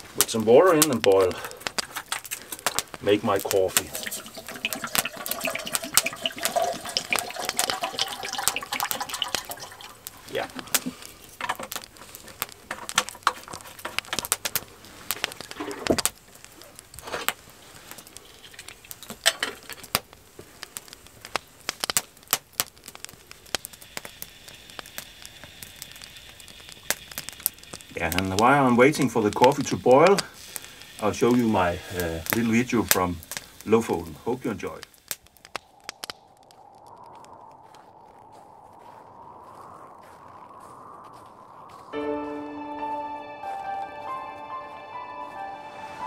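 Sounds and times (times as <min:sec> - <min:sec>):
wood fire crackling and popping: 0:00.0 - 0:46.0
water pouring into metal kettle: 0:03.8 - 0:10.4.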